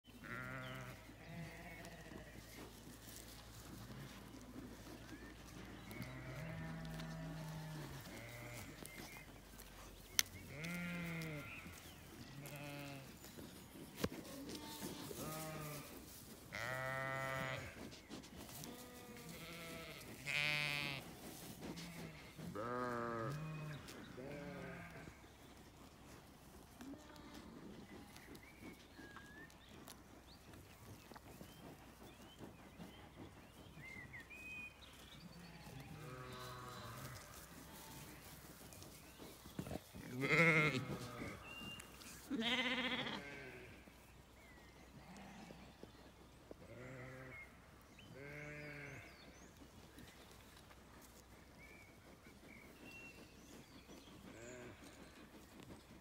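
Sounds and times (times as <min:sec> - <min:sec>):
sheep bleating: 0:00.2 - 0:02.4, 0:06.0 - 0:08.8, 0:10.5 - 0:11.7, 0:12.3 - 0:13.1, 0:14.3 - 0:17.8, 0:18.6 - 0:21.0, 0:21.8 - 0:25.2, 0:35.6 - 0:38.0, 0:40.1 - 0:41.4, 0:42.3 - 0:43.7, 0:46.7 - 0:47.3, 0:48.2 - 0:49.1.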